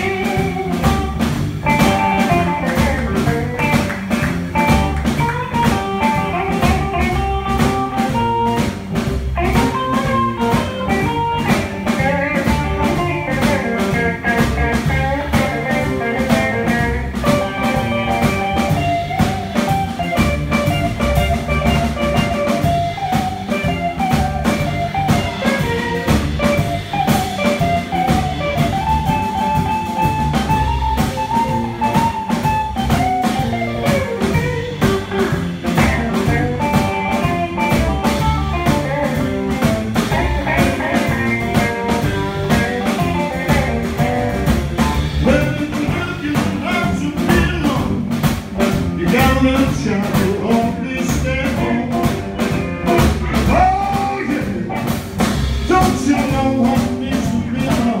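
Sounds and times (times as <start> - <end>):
blues band playing: 0.0 - 58.0
drum kit beat: 0.0 - 58.0
guitar lead: 0.0 - 58.0.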